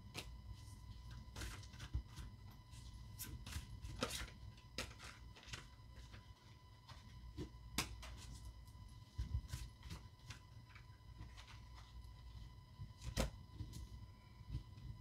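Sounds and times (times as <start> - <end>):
thin steady hum: 0.0 - 15.0.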